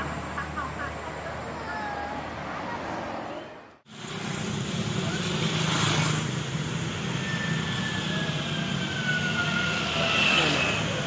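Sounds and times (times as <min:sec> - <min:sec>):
motorbikes and scooters passing: 0:00.0 - 0:11.0.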